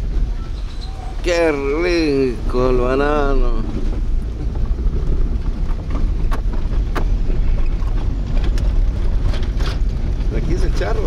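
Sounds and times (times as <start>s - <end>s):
car engine and tyres rumbling: 0.0s - 11.0s
knocks and rattles from bumps: 3.2s - 11.0s.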